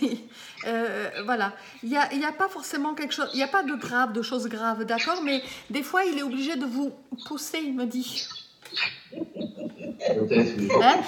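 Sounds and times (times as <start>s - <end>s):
woman speaking: 0.0s - 8.3s, 9.7s - 11.0s
soft laughter: 8.8s - 11.0s.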